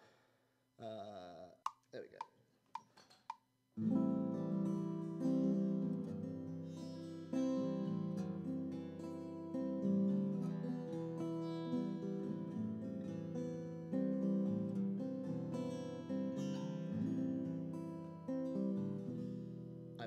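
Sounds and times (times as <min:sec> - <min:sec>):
acoustic guitar strumming chords: 0:03.8 - 0:20.0
recorded guitar playback: 0:03.8 - 0:20.0.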